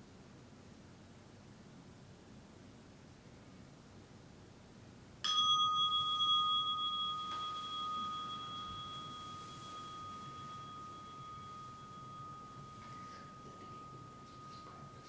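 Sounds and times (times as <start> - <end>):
meditation bell ringing: 5.2 - 15.0.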